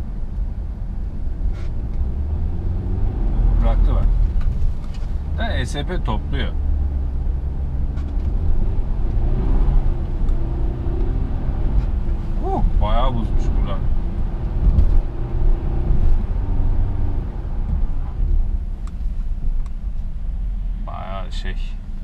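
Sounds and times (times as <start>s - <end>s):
car engine and tyre rumble: 0.0s - 22.0s.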